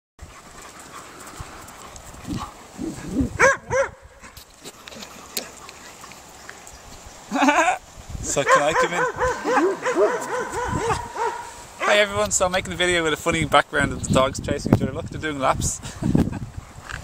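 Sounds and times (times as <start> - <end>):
outdoor background noise: 0.2 - 17.0
dogs yipping: 0.3 - 4.4, 8.5 - 12.1.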